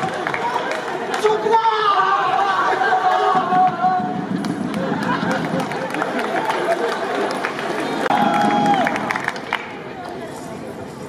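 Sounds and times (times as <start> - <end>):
audience laughing and chattering: 2.4 - 11.0.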